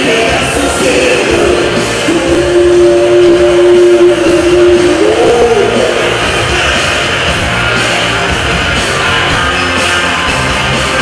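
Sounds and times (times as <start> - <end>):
loud dance music: 0.0 - 11.0.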